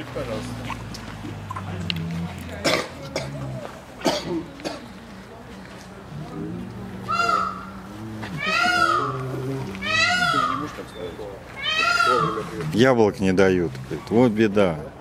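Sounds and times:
man coughing: 4.0s - 4.9s
bear whining calls: 6.4s - 12.8s.

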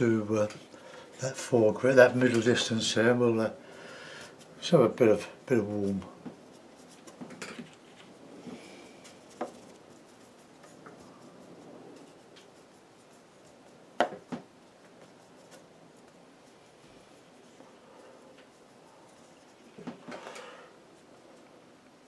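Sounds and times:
brush scratching on paper: 0.0s - 21.6s
brush tapping a palette: 13.5s - 15.6s.

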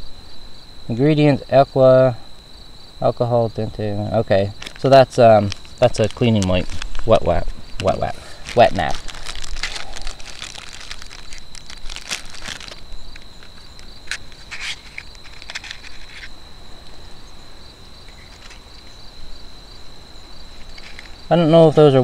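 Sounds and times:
high insect trill: 0.0s - 22.0s
packets crinkling and rustling: 4.4s - 16.4s, 18.2s - 18.7s, 20.6s - 21.2s.

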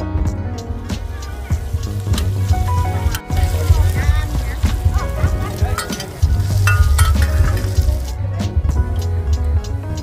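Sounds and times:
food sizzling in oil: 0.8s - 8.2s
metal spatulas scraping and clinking: 5.5s - 7.8s.

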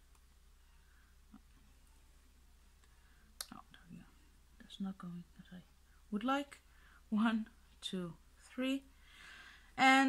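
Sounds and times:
woman speaking: 3.5s - 8.9s, 9.8s - 10.0s.

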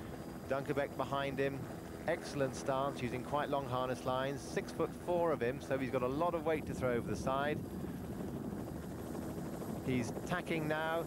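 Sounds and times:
helicopter rotor and engine rumble: 0.0s - 11.0s.

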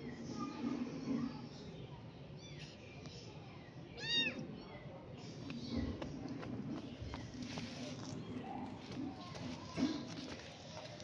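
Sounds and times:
kitten meowing: 4.0s - 4.4s.

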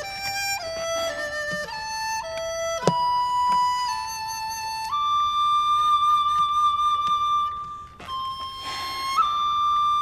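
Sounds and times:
slow flute-like melody: 0.0s - 10.0s.

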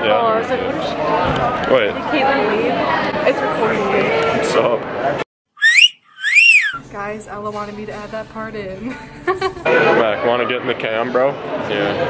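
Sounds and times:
high whistle-like gliding tone: 5.6s - 6.8s.

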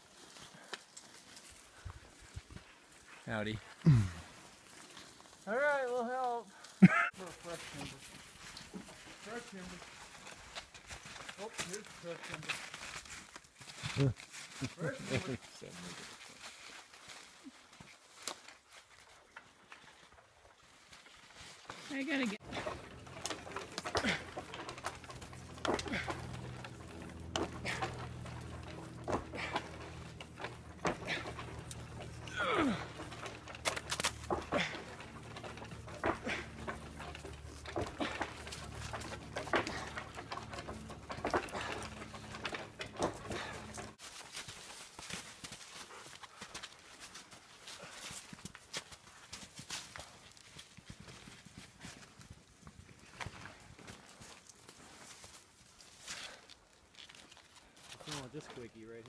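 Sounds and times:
dead tree crunching and creaking: 7.0s - 59.0s
low steady hum: 22.4s - 44.0s.

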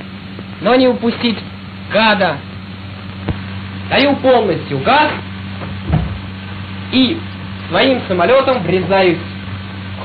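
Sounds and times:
dull thump: 5.6s - 6.4s.

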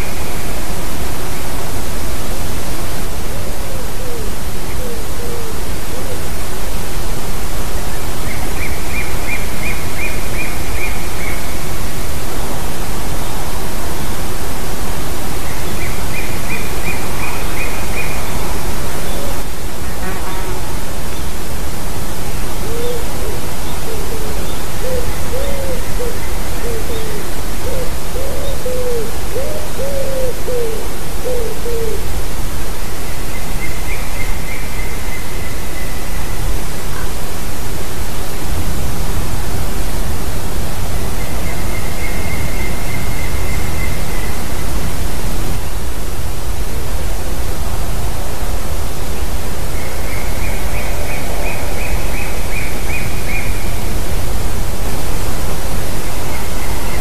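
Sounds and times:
wind hiss: 0.0s - 57.0s.

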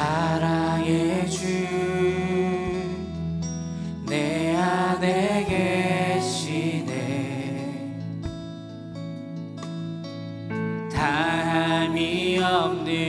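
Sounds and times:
group singing worship song: 0.0s - 8.3s, 10.9s - 13.0s
acoustic guitar chords: 0.0s - 13.0s.

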